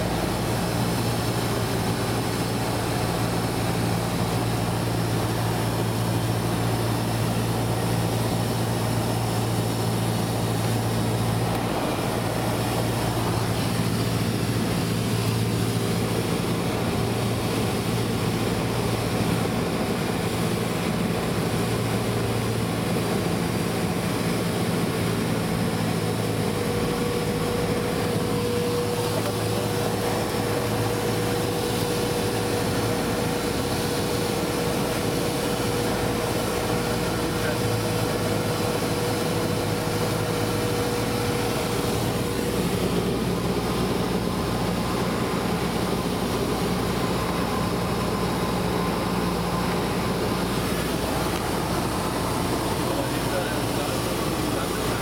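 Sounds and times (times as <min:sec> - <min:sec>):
airflow noise: 0:00.0 - 0:21.2, 0:22.4 - 0:55.0
airplane engine and propeller droning: 0:00.0 - 0:55.0.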